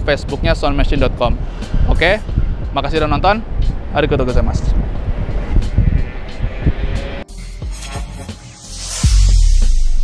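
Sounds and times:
faint background music: 0.0 - 7.2
low rumble: 3.4 - 10.0.

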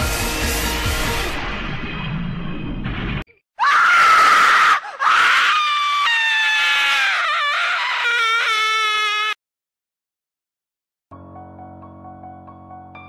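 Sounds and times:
high-pitched human screams: 3.6 - 9.4.

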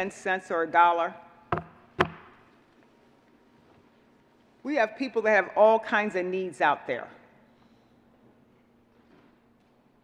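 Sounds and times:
knocks on wooden lectern: 1.5 - 2.4.

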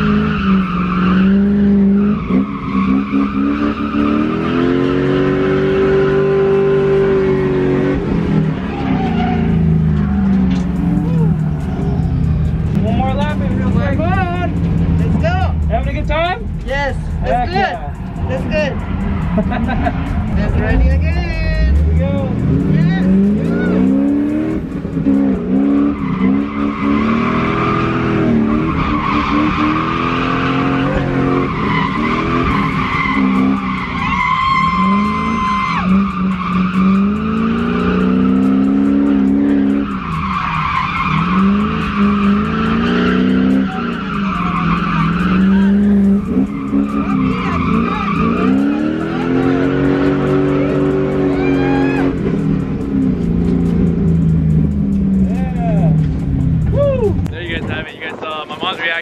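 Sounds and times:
car engine revving: 0.0 - 59.0
tyres squealing and skidding: 0.0 - 59.0.

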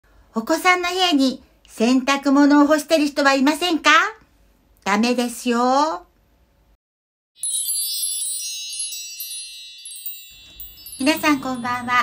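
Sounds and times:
wind chimes tinkling: 7.4 - 12.0.

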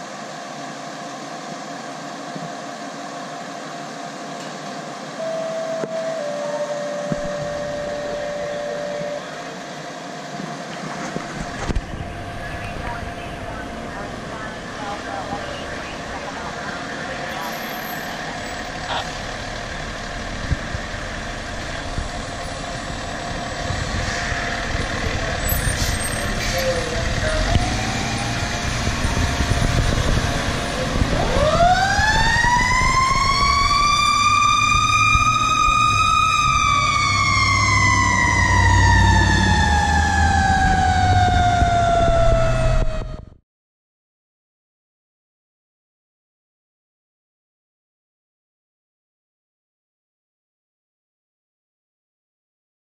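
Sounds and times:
fire engine running: 0.0 - 43.4.

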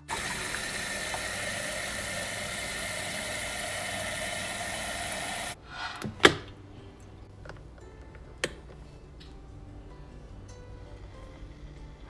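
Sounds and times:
tap water running into kettle: 0.0 - 5.6.

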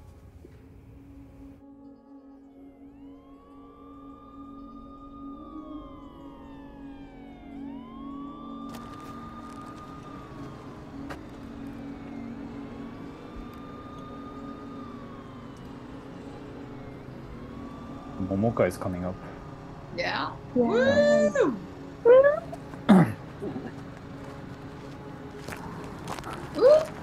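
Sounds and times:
low steady drone: 0.0 - 27.0
siren wailing: 1.6 - 27.0.

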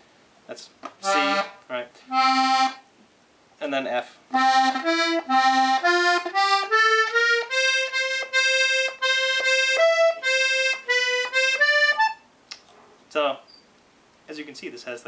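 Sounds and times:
button accordion single notes: 1.0 - 2.9, 4.3 - 12.3.

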